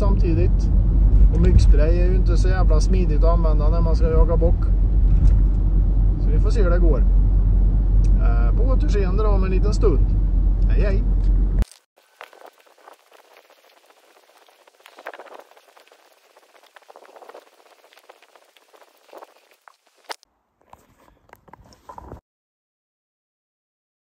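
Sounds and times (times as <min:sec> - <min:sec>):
low rumble: 0:00.0 - 0:11.6
footsteps through grass and undergrowth: 0:11.6 - 0:22.1.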